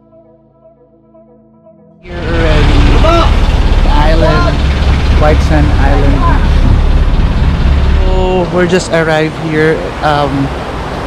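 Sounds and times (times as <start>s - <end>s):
soft ambient music: 0.0s - 6.0s
boat engine rumbling: 2.0s - 11.0s
people's voices: 2.1s - 6.9s, 8.0s - 10.5s.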